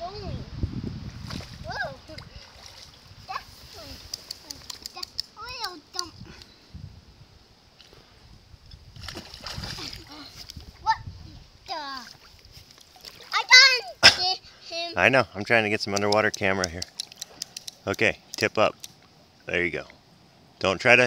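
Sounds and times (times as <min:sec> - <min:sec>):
river water splashing: 0:01.2 - 0:04.9, 0:08.9 - 0:10.6, 0:11.8 - 0:14.3.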